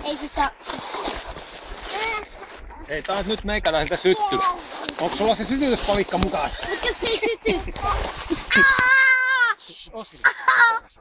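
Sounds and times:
high-pitched voice-like cry: 7.8s - 9.6s, 10.3s - 11.0s.

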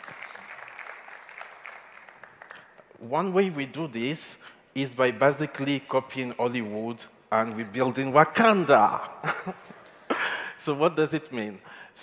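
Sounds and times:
audience applause: 0.0s - 2.9s.

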